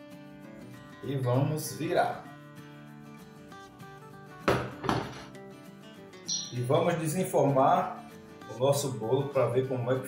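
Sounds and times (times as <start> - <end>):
quiet background music: 0.0 - 10.0
metal pan knocking on counter: 4.4 - 5.3.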